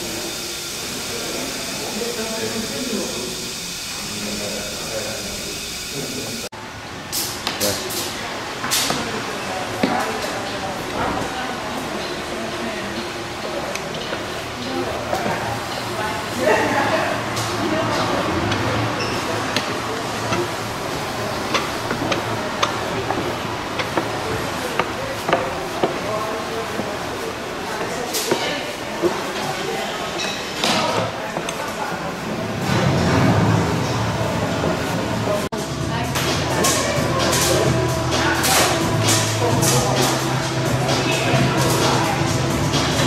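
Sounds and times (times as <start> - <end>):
murmur of voices: 7.4 - 43.0.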